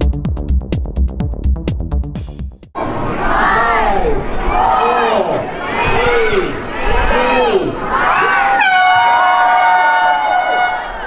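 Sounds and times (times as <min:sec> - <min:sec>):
crowd shouting countdown: 0:02.8 - 0:11.0
air horn blast: 0:08.4 - 0:11.0.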